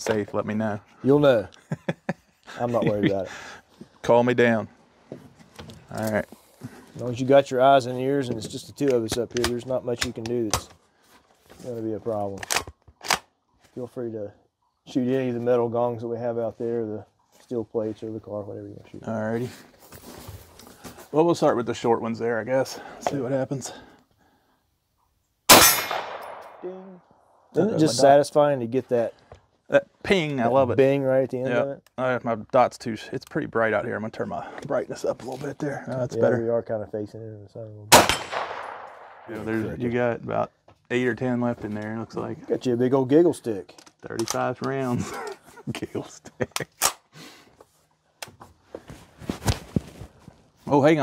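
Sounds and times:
rifle being handled: 12.4 - 13.3
bullet pinging steel target: 25.5 - 26.6, 37.9 - 39.3
rifle shot: 25.5 - 26.6, 37.9 - 39.4
person speaking a word: 27.6 - 28.2.

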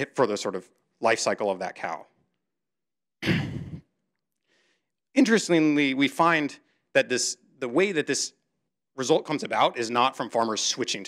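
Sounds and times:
faint in-breath: 4.4 - 5.0.

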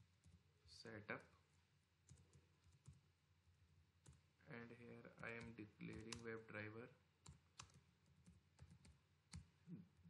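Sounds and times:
typing on computer keyboard: 5.2 - 6.4, 7.2 - 9.5.

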